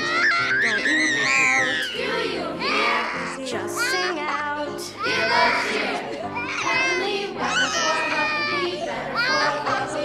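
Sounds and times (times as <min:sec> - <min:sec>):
boy screaming and crying: 0:00.0 - 0:02.0
children's voices: 0:00.0 - 0:09.9.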